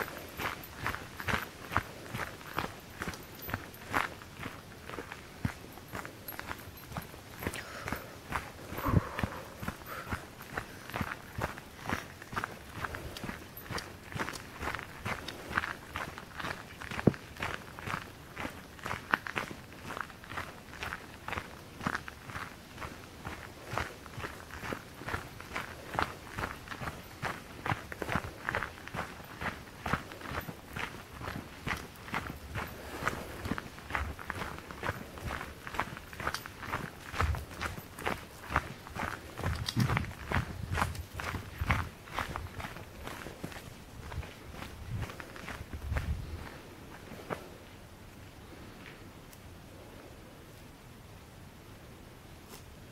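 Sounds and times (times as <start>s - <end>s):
footsteps on gravel: 0.0s - 47.6s.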